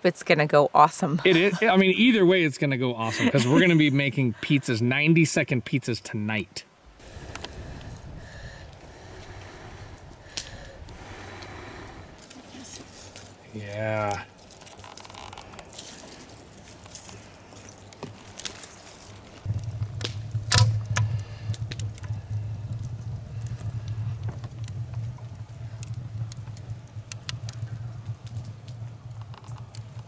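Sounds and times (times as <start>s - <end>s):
wood fire crackling: 1.2s - 30.0s
steady low rumble: 6.9s - 13.6s, 19.2s - 30.0s
sharp pops: 19.4s - 22.8s.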